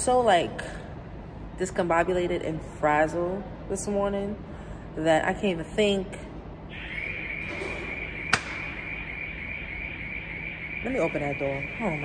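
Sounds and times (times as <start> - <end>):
high-pitched alarm tone: 6.7 - 12.0.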